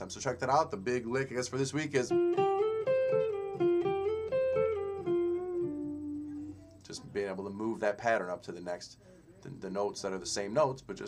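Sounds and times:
electric guitar blues lick: 1.9 - 6.8.

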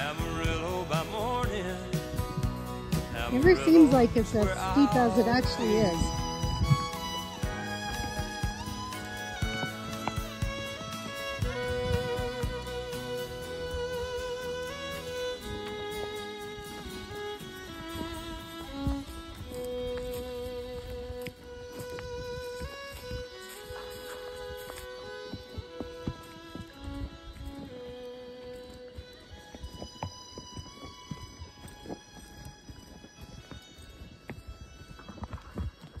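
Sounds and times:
fiddle melody: 0.0 - 36.0
horse hooves clip-clopping on dirt: 0.0 - 36.0.

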